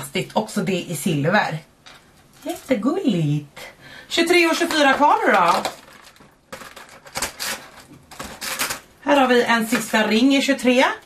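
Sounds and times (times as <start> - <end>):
cardboard tearing: 5.4 - 8.9.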